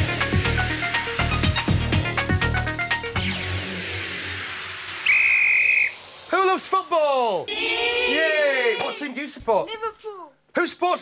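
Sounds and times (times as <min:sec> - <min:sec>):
referee's whistle: 0:05.0 - 0:06.2.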